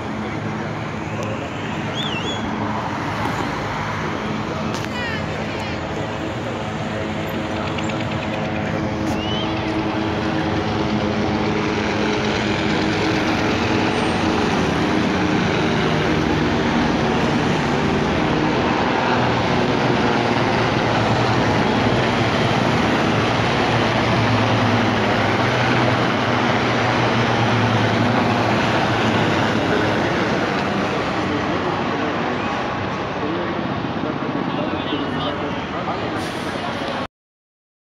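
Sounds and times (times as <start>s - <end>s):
helicopters flying low overhead: 0.0s - 37.1s.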